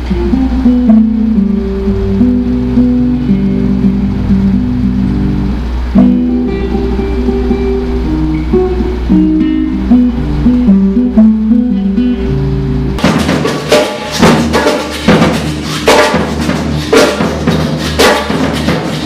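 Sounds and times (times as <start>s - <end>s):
classical guitar fingerstyle: 0.0s - 19.0s
steady low hum: 0.0s - 19.0s.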